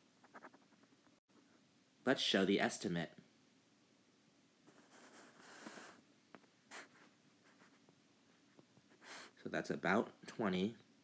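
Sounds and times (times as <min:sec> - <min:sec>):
stylus scratching on tablet: 0:00.2 - 0:00.8, 0:04.7 - 0:06.0, 0:06.7 - 0:07.8.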